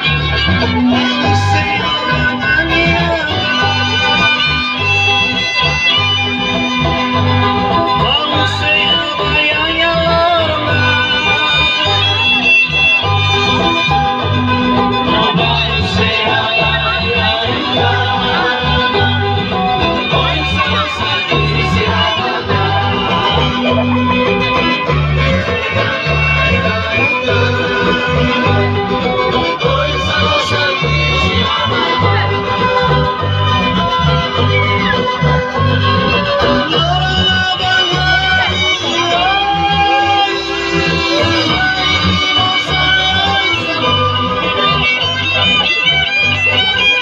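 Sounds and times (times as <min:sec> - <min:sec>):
acoustic guitars: 0:00.0 - 0:47.0
pulsing bass: 0:00.0 - 0:47.0.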